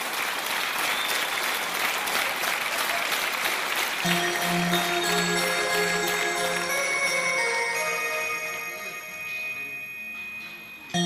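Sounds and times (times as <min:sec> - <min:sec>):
rock band holding notes: 0:04.0 - 0:09.3.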